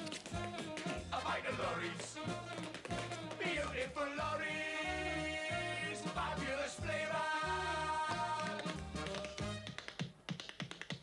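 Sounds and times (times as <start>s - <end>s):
tap-dance steps on wood: 0.0s - 4.5s, 8.1s - 11.0s
backing music: 0.0s - 9.8s.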